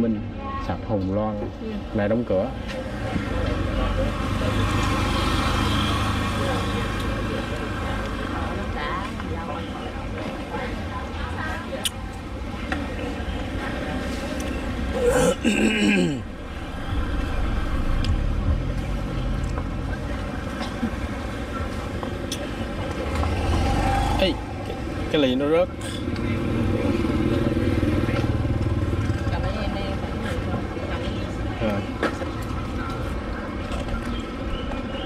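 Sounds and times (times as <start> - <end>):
steady low traffic rumble: 0.0 - 35.0
cars and motorbikes passing: 1.8 - 35.0.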